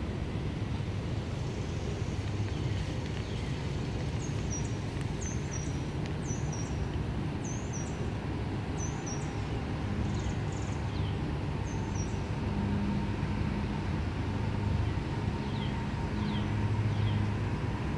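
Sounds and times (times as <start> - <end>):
low outdoor hum: 0.0 - 17.9.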